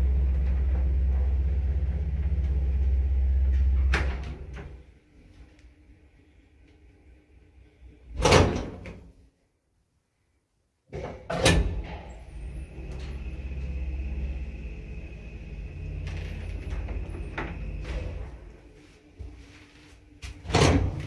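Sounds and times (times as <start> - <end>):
lift machinery humming and whining: 0.0 - 8.9, 11.3 - 21.0.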